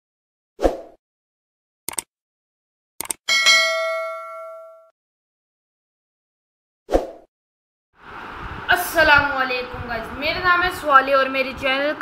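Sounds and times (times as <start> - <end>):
bell ding: 3.3 - 4.9.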